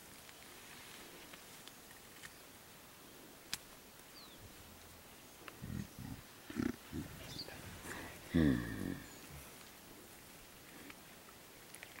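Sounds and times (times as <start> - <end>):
gorilla low grunts: 5.6 - 9.6.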